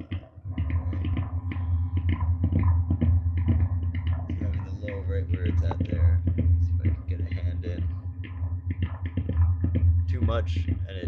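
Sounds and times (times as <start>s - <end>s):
deep bass noise drone: 0.0s - 11.0s.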